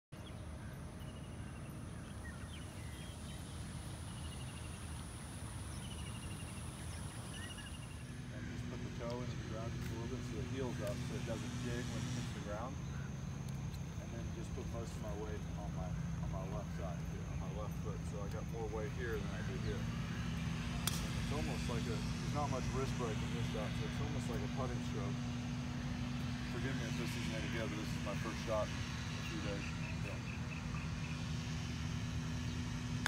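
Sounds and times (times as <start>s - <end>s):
low hum: 0.2s - 33.0s
bird-like chirps: 5.6s - 8.6s.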